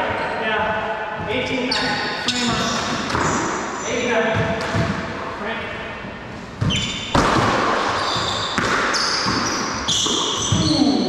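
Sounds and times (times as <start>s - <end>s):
voices: 0.0s - 4.8s
ball smacking echoing: 1.9s - 5.3s, 6.6s - 10.9s.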